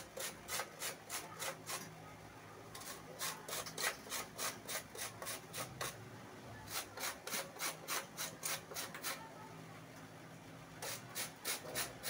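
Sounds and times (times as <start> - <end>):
cabbage rasping on grater: 0.0 - 1.8, 2.8 - 6.0, 6.7 - 9.2, 10.8 - 12.0.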